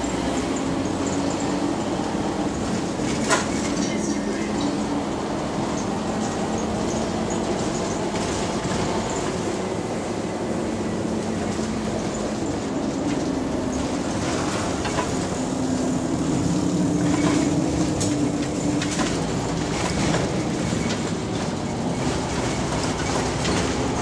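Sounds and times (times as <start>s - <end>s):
bus drivetrain rumble: 0.0s - 24.0s.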